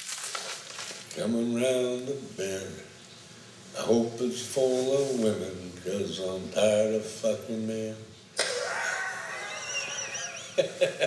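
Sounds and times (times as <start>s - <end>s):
man laughing wheezily: 8.4s - 11.0s.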